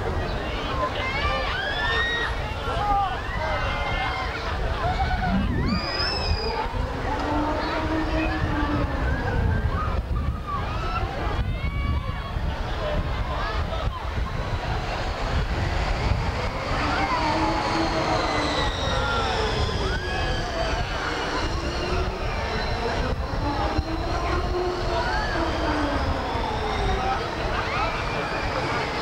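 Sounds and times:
people's voices: 0.0s - 29.0s
train rumbling on track: 2.3s - 29.0s
high whine: 4.4s - 8.9s, 13.0s - 29.0s.

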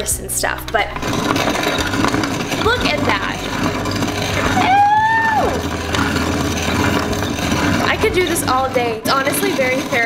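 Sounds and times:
hand-crank coffee grinder grinding: 0.0s - 10.0s
vocal ooh: 4.6s - 5.6s.

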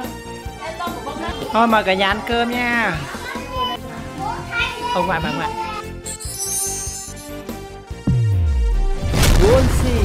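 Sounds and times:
background music: 0.0s - 10.0s
adults and children talking: 0.4s - 6.2s.

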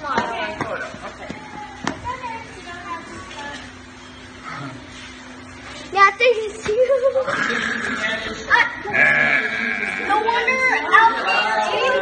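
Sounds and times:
small child's voice: 5.9s - 7.2s.

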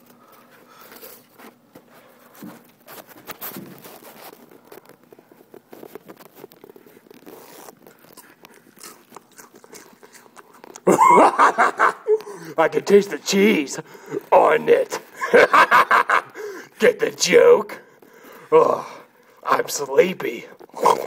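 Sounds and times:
crackers being chewed: 0.0s - 13.1s, 13.8s - 15.2s, 17.9s - 18.5s, 20.4s - 21.0s.

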